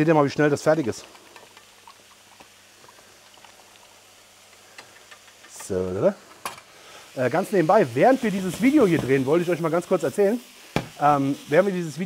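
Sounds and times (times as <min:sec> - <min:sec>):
food sizzling in a wok: 0:00.0 - 0:12.0
small pops and crackles: 0:00.8 - 0:05.8.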